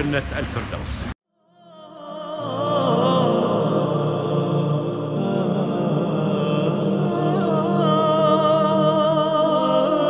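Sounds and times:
chant-like sung vocal melody: 0:01.4 - 0:10.0
low drone: 0:01.6 - 0:10.0.

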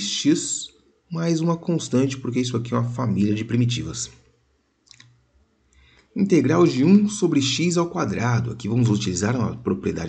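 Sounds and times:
faint clicks: 0:04.2 - 0:06.1.

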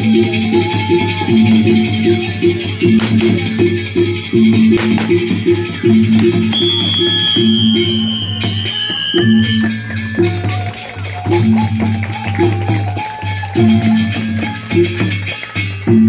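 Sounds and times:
jingling percussion: 0:00.0 - 0:16.0
long high held note: 0:03.0 - 0:10.8.

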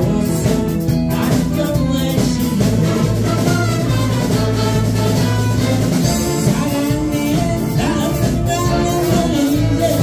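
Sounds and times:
big band playing: 0:00.0 - 0:10.0.

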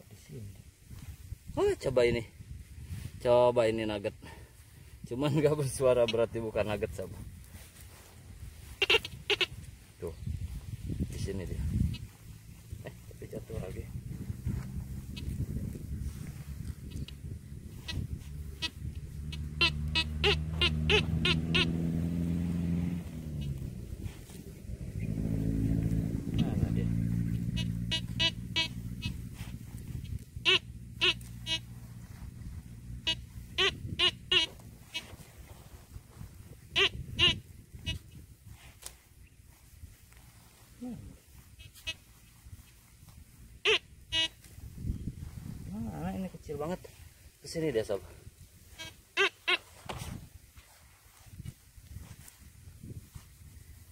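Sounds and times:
metal detector beeping: 0:08.8 - 0:09.5, 0:17.8 - 0:21.8, 0:27.5 - 0:29.2, 0:30.0 - 0:31.8, 0:33.0 - 0:35.1, 0:43.6 - 0:44.4, 0:48.8 - 0:49.6
low engine drone: 0:11.4 - 0:35.0.

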